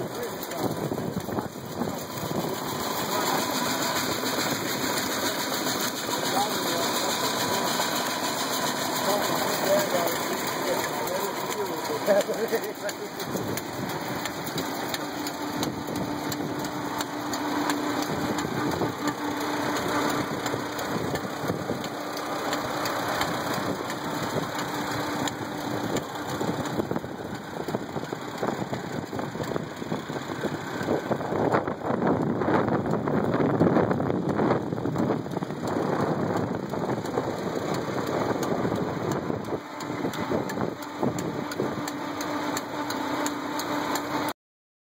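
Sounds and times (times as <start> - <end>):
gristmill hum: 0.0 - 44.2
tractor engine running: 0.0 - 44.3.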